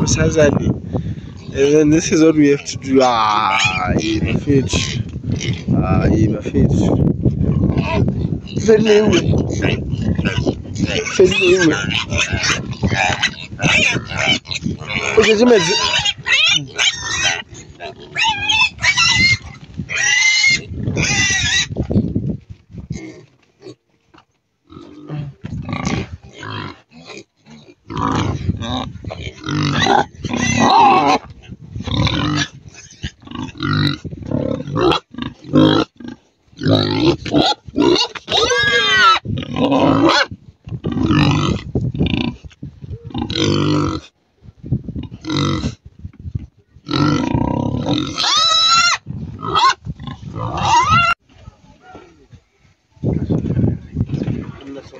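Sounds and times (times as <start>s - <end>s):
pigs grunting and squealing: 0.0s - 22.1s, 22.9s - 23.8s, 24.6s - 44.2s, 45.0s - 45.8s, 46.8s - 51.2s.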